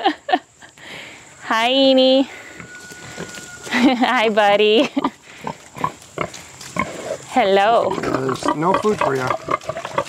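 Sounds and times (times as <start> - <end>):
pig grunting: 5.3 - 10.0.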